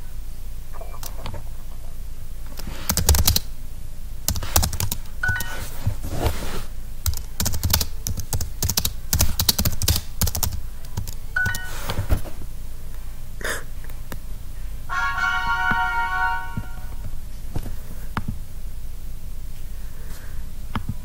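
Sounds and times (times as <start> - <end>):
computer keyboard typing: 2.6 - 3.5, 4.3 - 5.7, 7.0 - 11.9
bright jingle tones: 11.4 - 11.9
short electronic chime: 11.4 - 11.9, 14.9 - 17.0.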